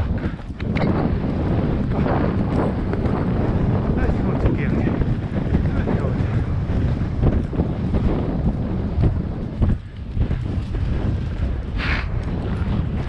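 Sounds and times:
hooves thudding on dirt: 0.0s - 13.0s
wind buffeting microphone: 0.0s - 13.0s.

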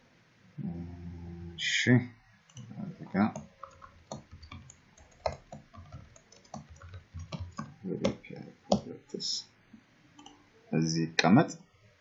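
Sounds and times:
keyboard keystrokes: 2.5s - 8.9s
mouse clicks: 10.2s - 10.4s.

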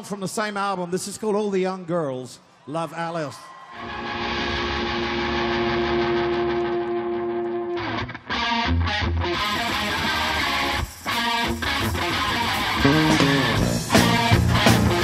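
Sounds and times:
electric guitar chord: 3.8s - 15.0s
live rock band playing: 3.8s - 15.0s.

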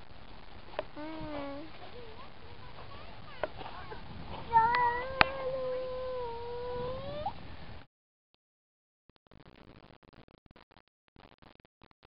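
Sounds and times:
toddler drawn-out vocal sound: 1.0s - 2.2s, 4.5s - 7.4s.

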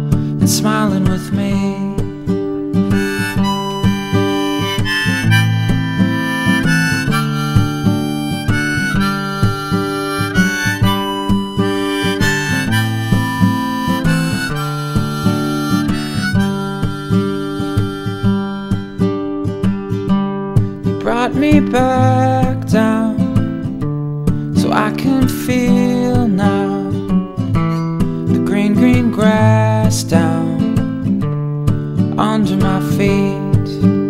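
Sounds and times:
strummed acoustic guitar: 0.0s - 34.0s
harmonica melody: 2.7s - 23.0s.

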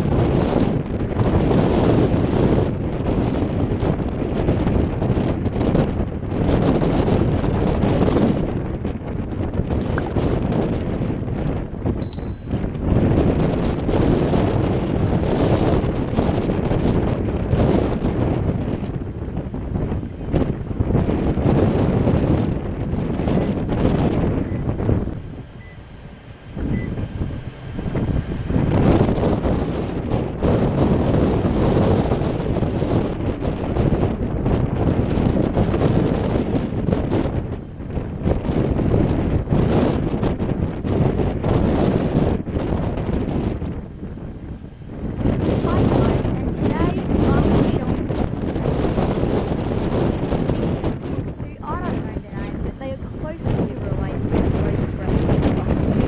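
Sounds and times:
wind buffeting microphone: 0.0s - 56.0s
brief high whistle: 12.0s - 12.9s.

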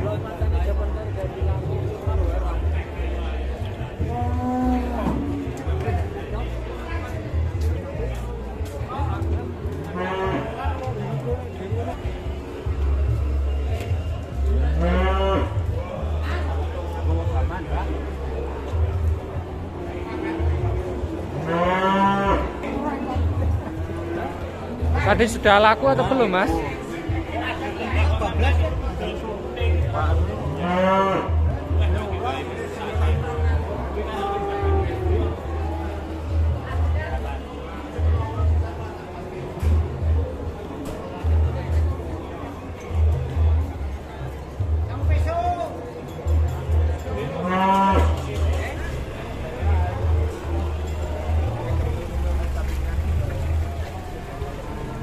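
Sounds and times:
cow mooing: 4.2s - 5.6s, 21.2s - 22.7s, 34.1s - 35.4s, 47.3s - 48.2s.

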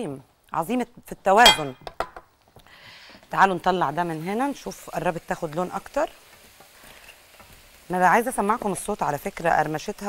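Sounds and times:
oil sizzling while deep-frying: 2.3s - 10.0s.

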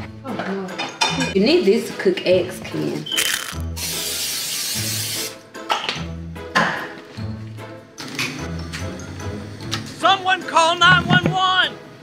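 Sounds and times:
cooking spray hissing: 3.5s - 5.4s.

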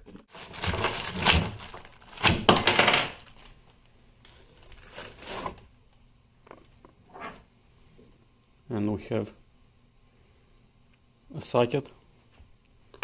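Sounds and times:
plastic wrapping rustling: 0.0s - 5.7s.

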